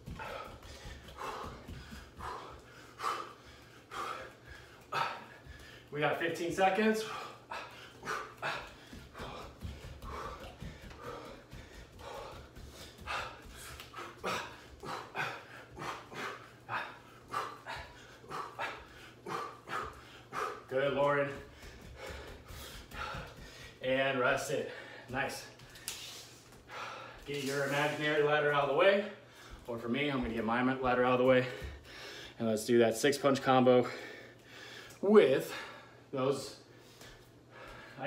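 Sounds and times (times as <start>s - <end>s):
man breathing hard: 0.0s - 5.9s, 6.8s - 23.8s, 24.6s - 27.3s, 29.1s - 29.7s, 31.4s - 32.4s, 33.8s - 38.0s.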